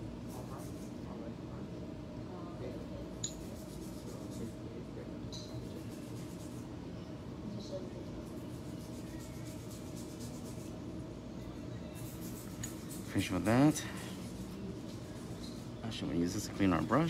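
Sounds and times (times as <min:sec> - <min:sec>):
nail brush scratchy brushing: 0:00.2 - 0:01.0, 0:03.3 - 0:04.6, 0:05.5 - 0:06.7, 0:08.2 - 0:11.0, 0:11.9 - 0:17.0.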